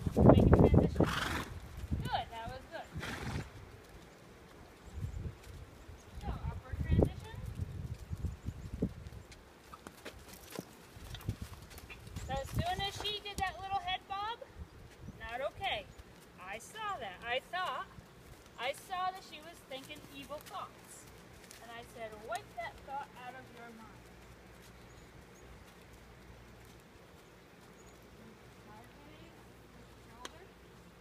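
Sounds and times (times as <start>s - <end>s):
horse hooves on gravel: 0.0s - 31.0s
horse whinny: 1.0s - 1.6s, 2.9s - 3.6s.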